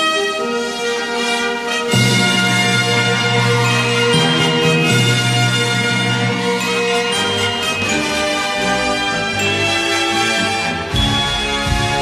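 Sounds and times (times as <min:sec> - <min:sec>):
military brass band music: 0:00.0 - 0:12.0
steady low chord: 0:01.9 - 0:12.0.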